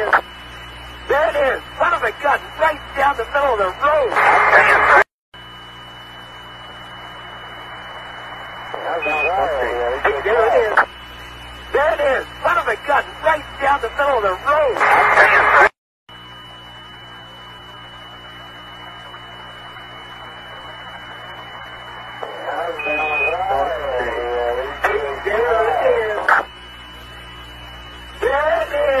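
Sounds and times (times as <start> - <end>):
radio static hiss: 0.0 - 15.8, 16.4 - 29.0
radio voice chatter: 1.1 - 5.0, 8.7 - 11.0, 11.7 - 15.7, 22.2 - 26.5, 28.2 - 29.0.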